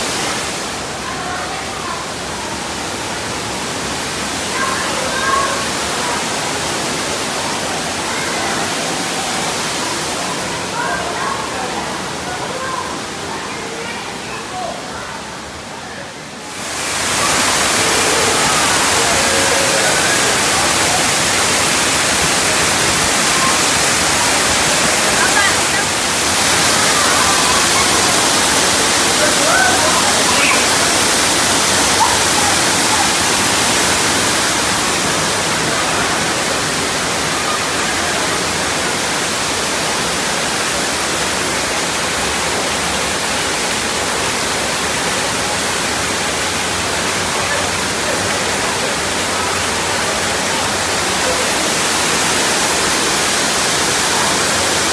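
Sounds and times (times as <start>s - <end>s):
faint voices of swimmers: 0.0s - 54.9s
waterfall rushing into pool: 0.0s - 54.9s.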